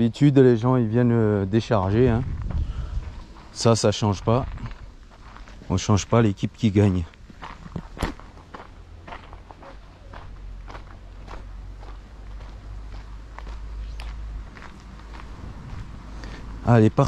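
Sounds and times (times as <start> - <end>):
steady low rumble: 0.0 - 17.0
footsteps on dirt road: 1.5 - 17.0.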